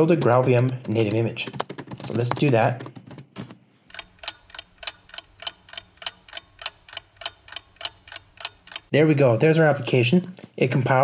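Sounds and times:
clock ticking: 0.0s - 3.0s, 3.9s - 9.0s.

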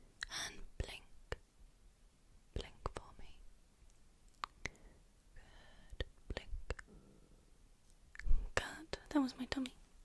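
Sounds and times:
woman whispering: 0.2s - 1.4s, 2.5s - 3.5s, 5.4s - 6.9s, 8.2s - 9.8s.

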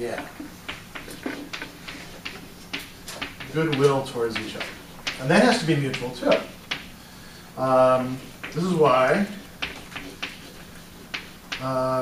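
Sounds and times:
chalk tapping and scratching: 0.0s - 7.1s, 7.8s - 11.8s.

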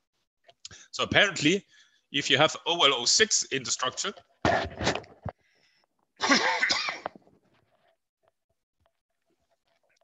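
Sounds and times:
man coughing: 6.2s - 7.2s.

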